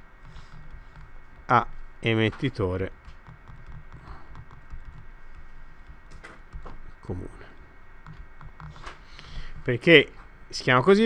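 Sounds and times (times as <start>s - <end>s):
stylus tapping and scratching on screen: 0.0s - 10.4s.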